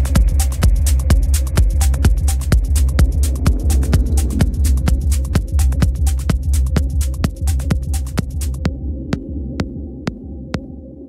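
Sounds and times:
hi-hats: 0.0 - 8.7
techno kick drum: 0.0 - 10.8
droning bass: 0.0 - 11.0.

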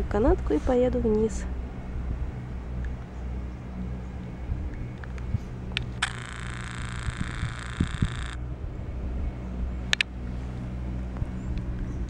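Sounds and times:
chairlift mechanical hum: 0.0 - 12.0
high steady hiss: 1.4 - 8.4
sharp clicks: 4.7 - 8.4.

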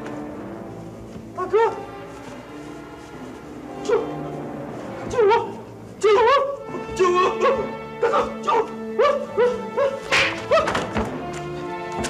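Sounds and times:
background music score: 0.0 - 12.0.

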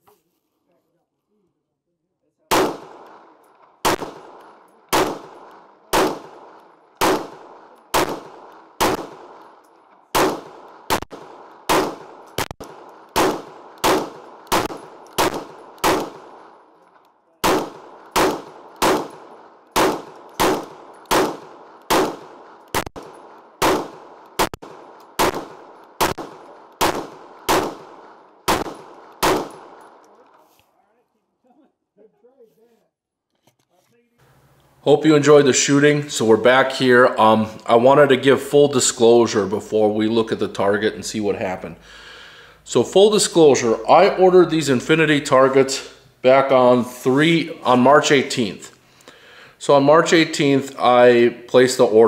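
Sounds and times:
gunshots echoing: 2.5 - 30.4.

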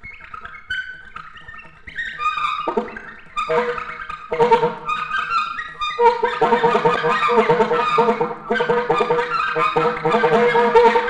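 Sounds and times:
alto saxophone improvising: 3.5 - 5.0.

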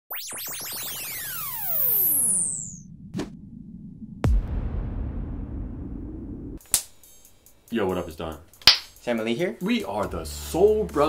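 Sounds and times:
sweeping electronic tones: 0.1 - 4.2.

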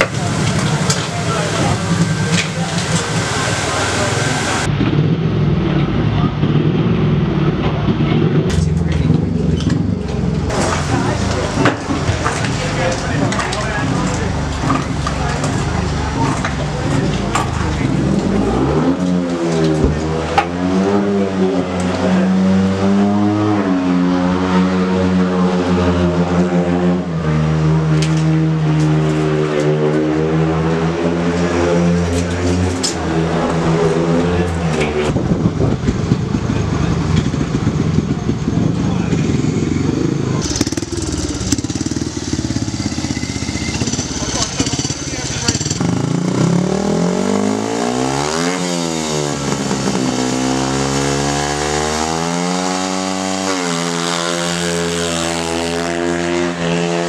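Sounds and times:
motorcycle engines revving: 0.0 - 57.0.

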